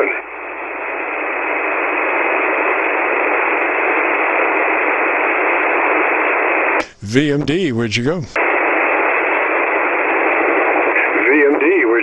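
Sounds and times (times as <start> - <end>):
radio receiver hiss: 0.0 - 12.0.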